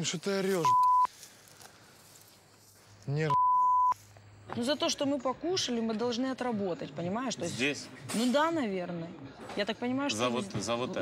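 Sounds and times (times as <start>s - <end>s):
faint outdoor background hiss: 0.0s - 11.0s
censor bleep: 0.6s - 1.1s, 3.3s - 4.0s.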